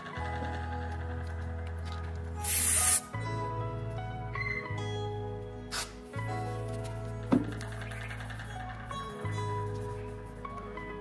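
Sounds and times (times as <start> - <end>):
background music: 0.0 - 11.0
aerosol spray hiss: 2.4 - 3.0.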